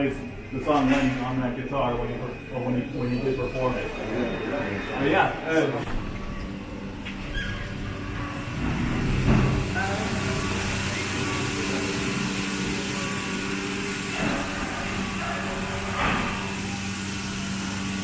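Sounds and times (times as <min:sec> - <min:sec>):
machine hum: 0:03.7 - 0:18.0.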